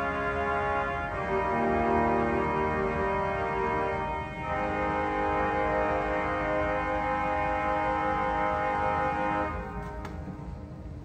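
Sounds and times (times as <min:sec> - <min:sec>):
pipe organ chord: 0:00.0 - 0:10.5.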